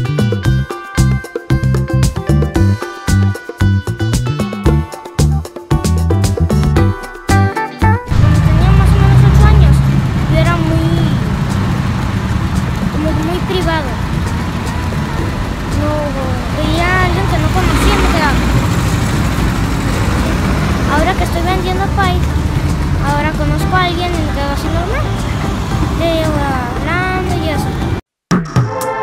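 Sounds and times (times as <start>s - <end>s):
road traffic: 8.0s - 28.0s
child talking: 8.1s - 11.2s, 12.9s - 14.0s, 15.7s - 18.5s, 20.8s - 22.4s, 23.0s - 25.1s, 25.9s - 27.9s
vehicle low rumble: 8.1s - 28.0s.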